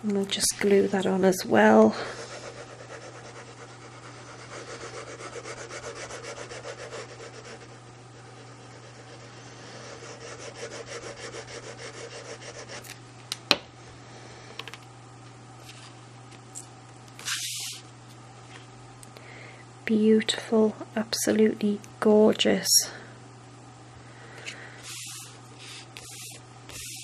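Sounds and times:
glue bottle tip rubbing paper: 0:24.8 - 0:27.0.

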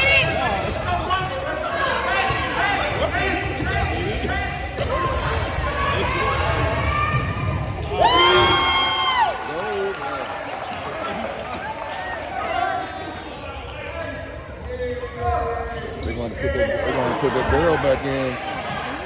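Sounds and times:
spectators chatter: 0:00.0 - 0:19.0.

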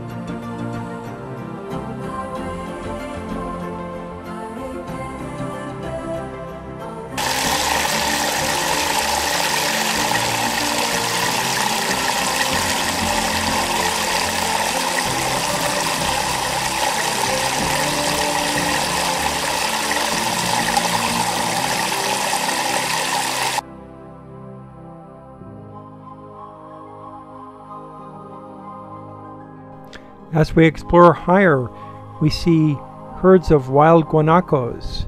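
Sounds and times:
soft background music: 0:00.0 - 0:35.0.

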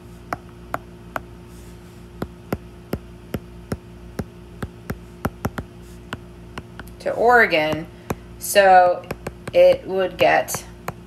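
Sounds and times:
faint electrical hum: 0:00.0 - 0:11.0
stylus tapping on glass screen: 0:03.4 - 0:06.9, 0:09.0 - 0:11.0.

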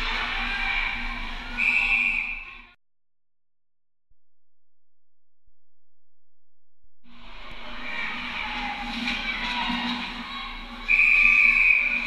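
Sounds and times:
referee's whistle blast: 0:01.6 - 0:02.6, 0:10.9 - 0:12.0
ice rink noise: 0:07.1 - 0:12.0.

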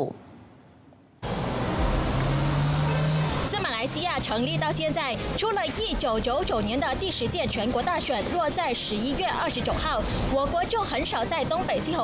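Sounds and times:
street road noise: 0:01.2 - 0:12.0
vehicle engine hum: 0:01.2 - 0:12.0
woman speaking: 0:03.5 - 0:12.0.

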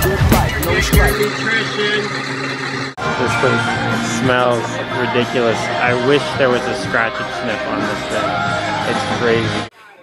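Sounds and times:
blender motor running: 0:00.5 - 0:05.8.

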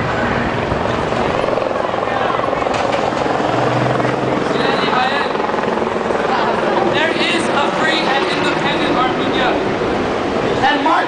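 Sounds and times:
crowd voices: 0:00.0 - 0:11.0
helicopter rotor chop: 0:00.0 - 0:11.0.

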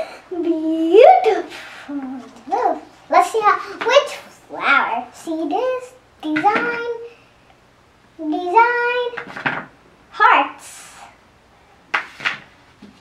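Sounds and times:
girl speaking: 0:00.0 - 0:07.2, 0:08.2 - 0:09.3, 0:10.1 - 0:11.2.

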